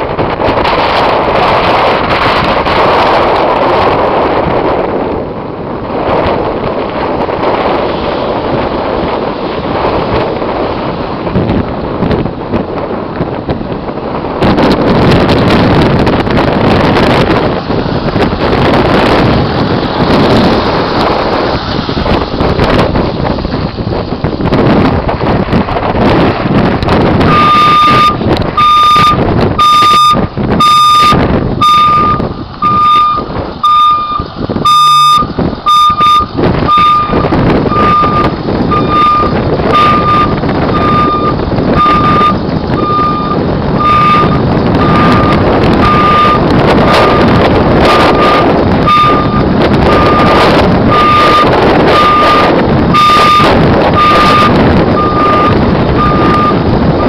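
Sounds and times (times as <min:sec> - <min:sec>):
loud constant rushing noise: 0:00.0 - 0:57.0
reversing alarm beeping: 0:27.3 - 0:56.6.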